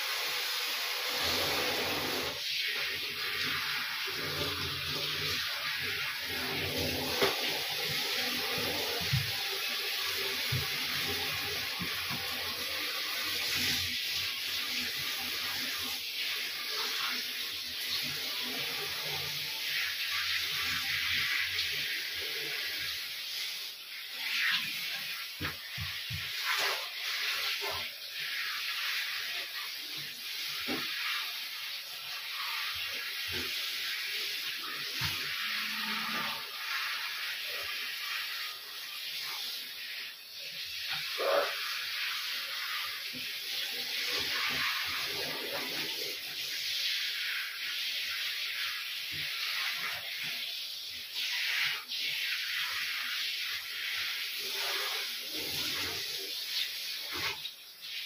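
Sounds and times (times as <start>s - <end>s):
shower water spraying into bathtub: 0.0s - 58.0s.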